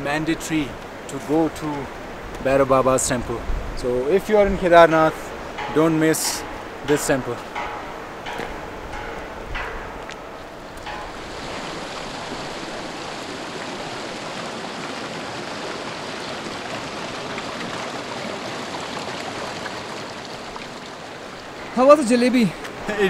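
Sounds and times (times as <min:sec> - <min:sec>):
flowing water rushing: 0:00.0 - 0:23.0.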